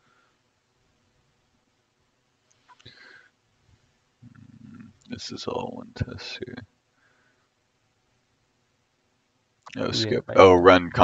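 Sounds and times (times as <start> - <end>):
soft click or breath: 2.5 - 3.4.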